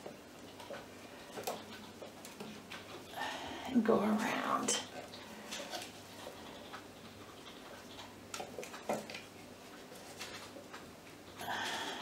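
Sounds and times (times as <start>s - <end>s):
hands clicking and rustling: 0.0s - 3.1s, 4.8s - 11.5s.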